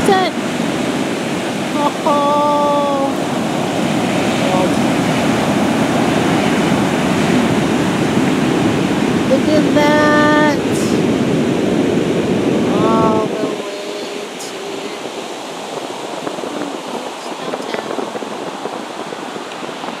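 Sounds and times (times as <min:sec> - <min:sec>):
ocean surf breaking: 0:00.0 - 0:20.0
person exclaiming: 0:01.8 - 0:03.2.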